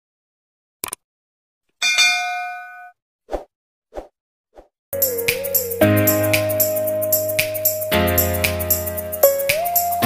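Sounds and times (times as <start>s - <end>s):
notification bell ding: 1.8s - 2.9s.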